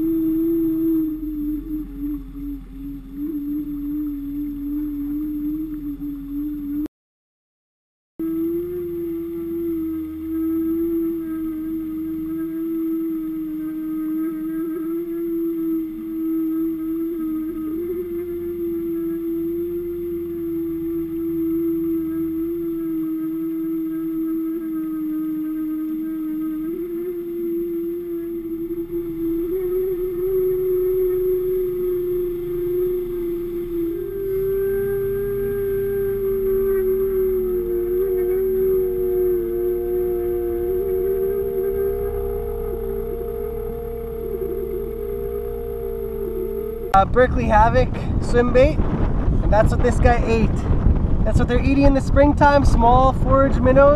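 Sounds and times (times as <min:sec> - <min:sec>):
droning hum underwater: 0:00.0 - 0:06.9, 0:08.2 - 0:53.9.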